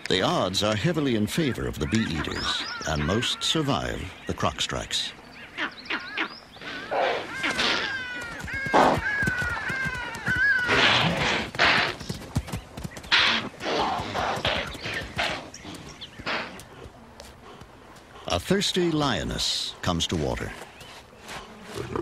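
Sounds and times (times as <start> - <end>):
birds chirping: 0.0 - 22.0.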